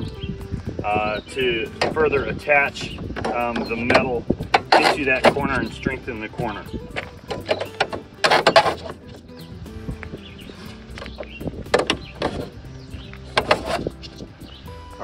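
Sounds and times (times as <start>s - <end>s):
faint background music: 0.0s - 15.0s.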